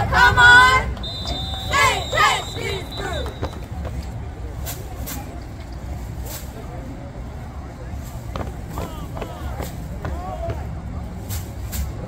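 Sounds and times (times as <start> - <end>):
girls chanting a cheer: 0.0 - 3.4
steady low rumble: 0.0 - 12.0.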